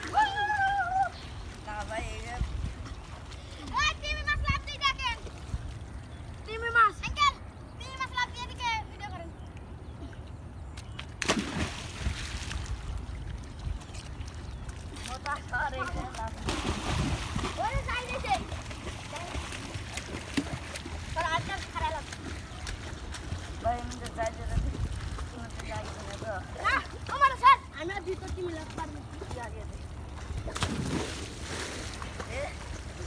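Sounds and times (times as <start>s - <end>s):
children shouting and chattering: 0.0s - 1.4s
bodies splashing into water: 10.8s - 33.0s.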